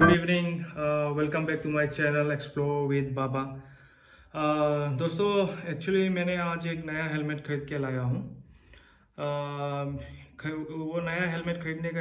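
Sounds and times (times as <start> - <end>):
man's drawn-out hesitation sound: 0.0 - 0.5
man talking: 0.0 - 3.6, 4.4 - 8.4, 9.2 - 12.0.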